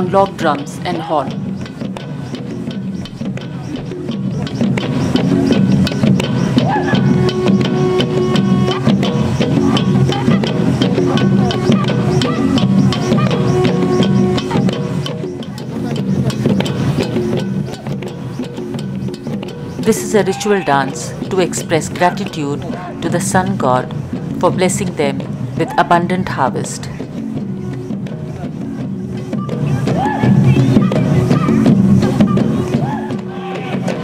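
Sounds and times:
log drums beaten with sticks: 0.0 - 34.0
horn held notes: 6.9 - 10.6, 11.4 - 14.7.

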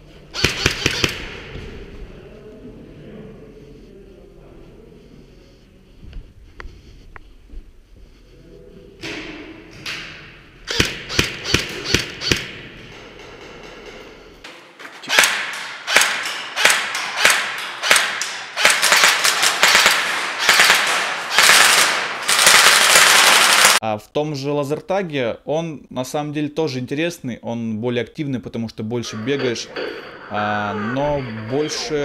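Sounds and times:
airsoft gun shots: 0.4 - 1.5, 10.7 - 12.6, 15.1 - 23.8
players' voices: 28.8 - 32.0.

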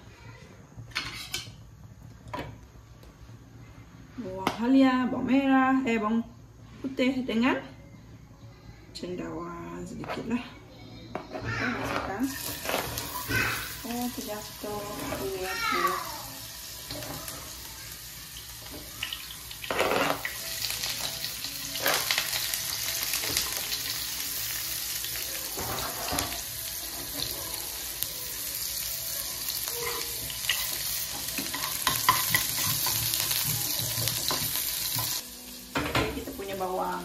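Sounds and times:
ginger and garlic sizzling in oil: 11.6 - 37.0.

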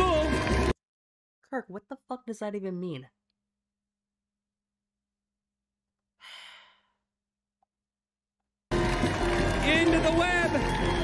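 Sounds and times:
person sighing: 6.2 - 7.0.

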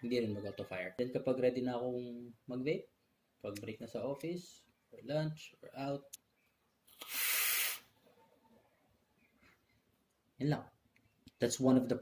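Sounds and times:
person blowing out vapour: 6.9 - 8.0.

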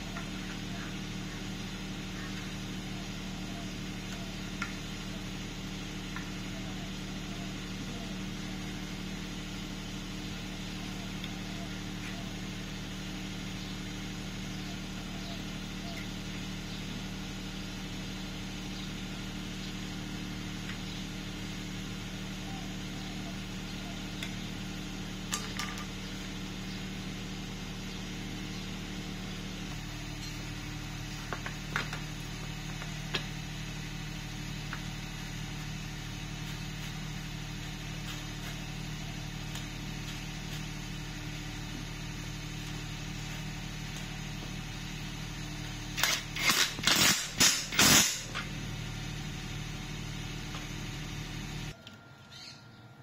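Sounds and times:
low mechanical hum: 0.0 - 53.0.

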